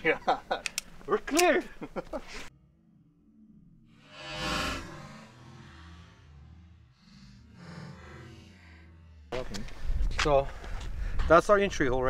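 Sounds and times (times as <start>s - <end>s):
speech: 11.3s - 12.0s.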